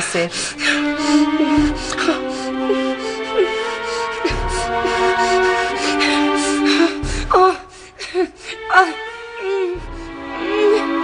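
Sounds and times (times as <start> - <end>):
dramatic music with held notes: 0.0 - 11.0.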